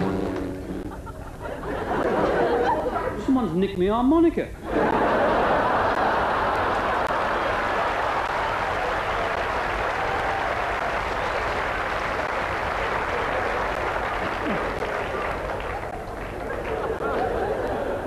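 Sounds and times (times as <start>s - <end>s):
audience laughing: 0.4s - 3.3s, 4.6s - 8.4s, 12.8s - 18.0s
audience applauding: 4.9s - 18.0s.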